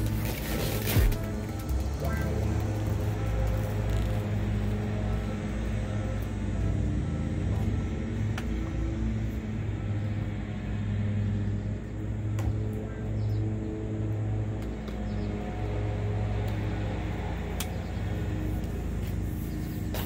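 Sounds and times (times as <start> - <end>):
low mechanical drone: 0.0 - 20.0.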